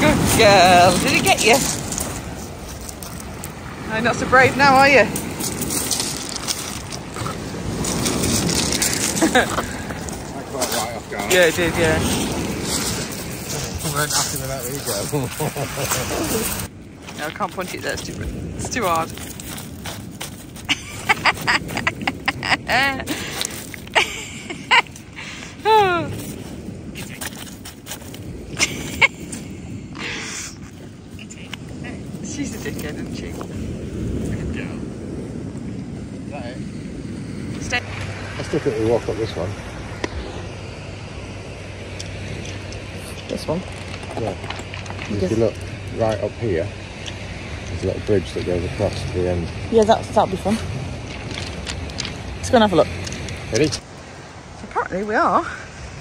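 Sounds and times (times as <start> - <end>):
small waves breaking on shingle: 0.0 - 35.7, 41.7 - 54.6
pebbles rattling: 5.1 - 10.2, 42.4 - 45.7, 50.9 - 53.8
dog digging in shingle: 5.1 - 23.9.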